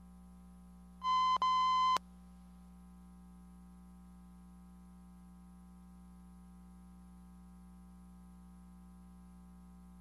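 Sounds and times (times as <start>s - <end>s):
high electronic beep: 1.0s - 2.0s.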